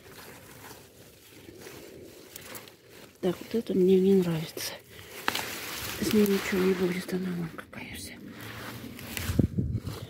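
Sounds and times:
rustling of leaves: 0:00.0 - 0:10.0.

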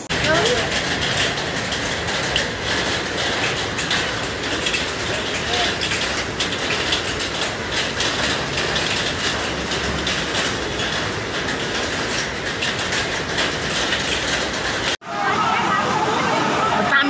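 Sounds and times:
floodwater rushing: 0:00.0 - 0:17.0.

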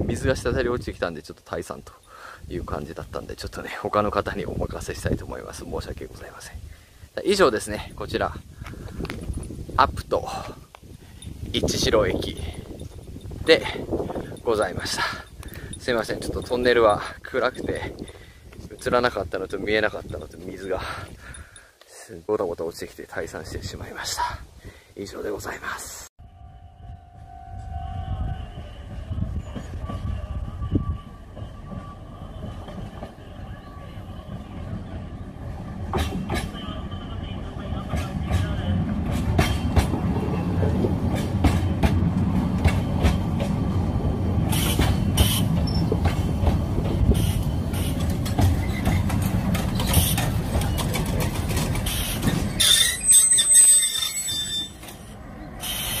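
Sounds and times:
train rumbling past: 0:02.5 - 0:10.6, 0:11.2 - 0:21.2, 0:26.2 - 0:56.0
high wheel squeal: 0:44.5 - 0:46.0, 0:47.1 - 0:51.0, 0:51.8 - 0:56.0
wheel and track clicks: 0:44.6 - 0:53.0.

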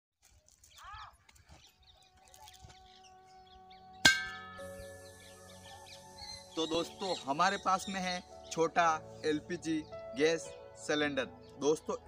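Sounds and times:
ringing metallic clang: 0:04.0 - 0:04.6.

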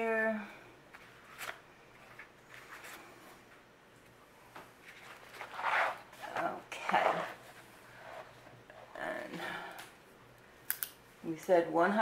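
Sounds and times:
book pages rustling: 0:00.9 - 0:04.1, 0:04.8 - 0:08.6.

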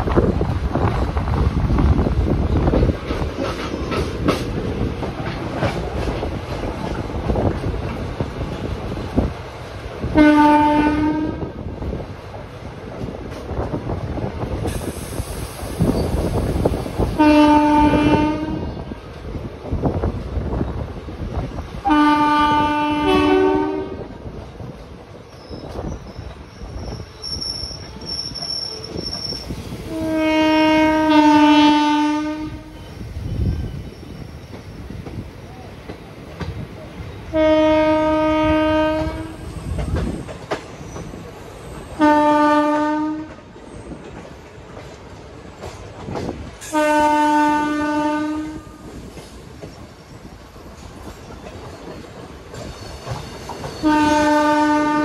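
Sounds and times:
train wheels rumbling on track: 0:00.0 - 0:55.0
train horn blasts: 0:10.2 - 0:11.5, 0:17.2 - 0:18.9, 0:21.8 - 0:24.1, 0:29.9 - 0:32.9, 0:37.3 - 0:39.5, 0:42.0 - 0:43.5, 0:46.7 - 0:48.9, 0:53.8 - 0:55.0.

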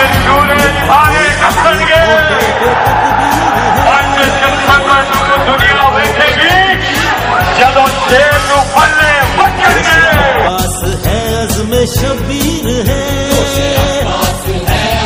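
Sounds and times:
steady drum beat: 0:00.0 - 0:15.0
protest song vocals: 0:06.4 - 0:15.0.

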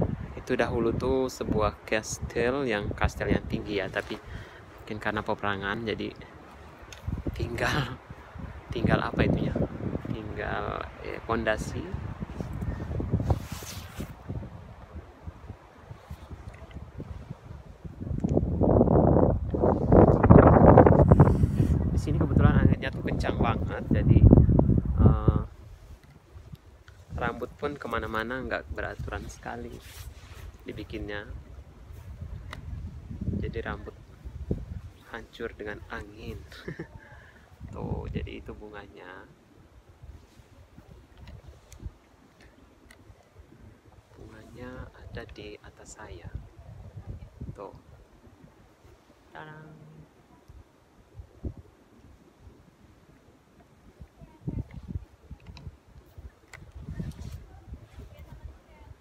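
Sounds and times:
gusty wind on microphone: 0:00.0 - 0:59.0.

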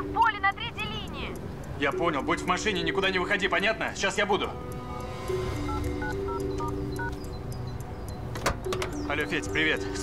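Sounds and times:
background music: 0:00.0 - 0:10.0
touch-tone keypad beeps: 0:05.6 - 0:09.1
car door click: 0:08.3 - 0:09.0.

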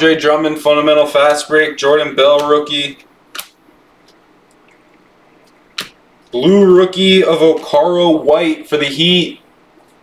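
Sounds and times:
card snapping: 0:03.3 - 0:04.7, 0:05.4 - 0:06.0.

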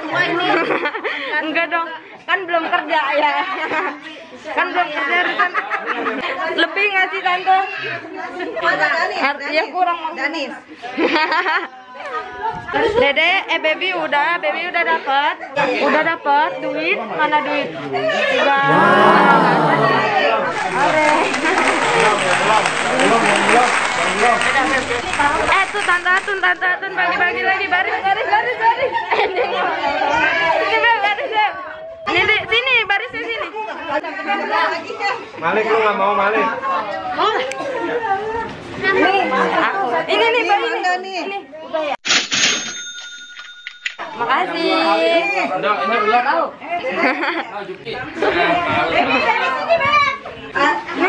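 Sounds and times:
people talking and exclaiming: 0:16.8 - 0:41.6
loud drawn-out voice: 0:18.6 - 0:20.5
ringing bell tone: 0:42.6 - 0:44.1.

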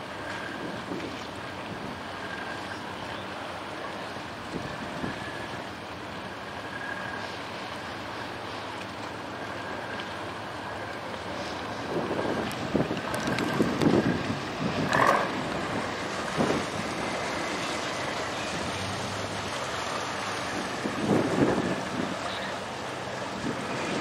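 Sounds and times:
boat engines rumbling: 0:00.0 - 0:24.0
wind buffeting microphone: 0:11.4 - 0:24.0.

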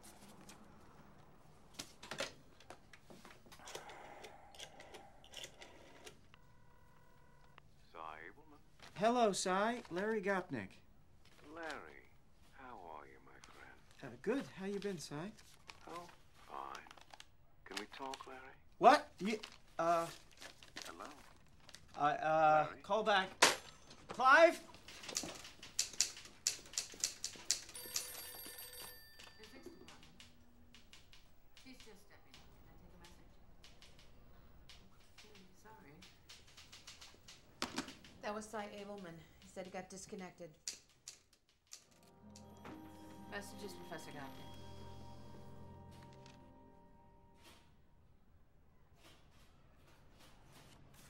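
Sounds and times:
telephone ringing: 0:05.5 - 0:07.8, 0:27.6 - 0:31.6, 0:42.1 - 0:47.4.

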